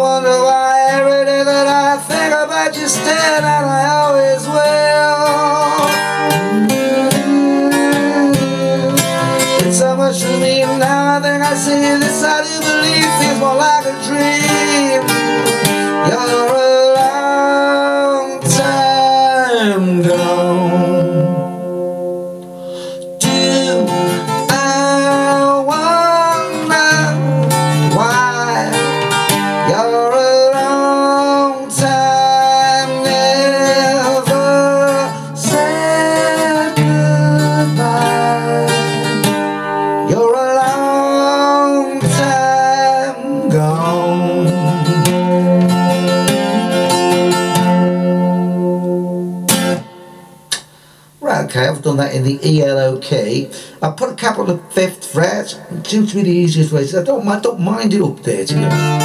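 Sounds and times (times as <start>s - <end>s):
person singing wordless melody: 0.0s - 49.5s
acoustic guitar strummed and picked: 0.0s - 59.0s.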